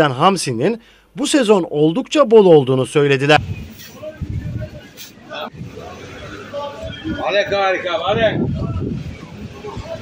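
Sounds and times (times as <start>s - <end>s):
faint scattered voices: 3.7s - 10.0s.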